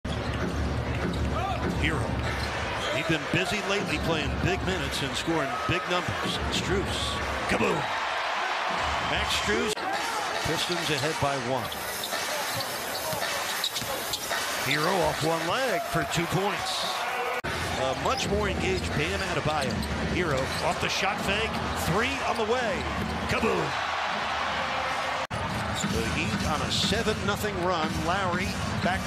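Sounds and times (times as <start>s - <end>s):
arena crowd noise: 0.1s - 29.0s.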